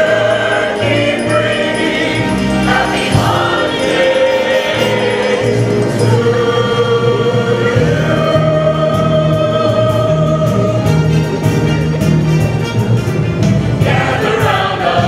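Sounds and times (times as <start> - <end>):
choir singing through microphones: 0.0 - 11.5, 13.8 - 15.0
accompaniment with bass line: 0.0 - 15.0.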